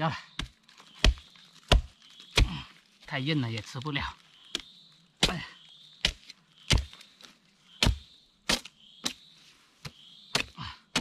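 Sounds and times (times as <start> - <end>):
hoe chopping bamboo shoot: 0.3 - 2.7, 4.5 - 7.0, 7.8 - 9.2, 9.8 - 11.0.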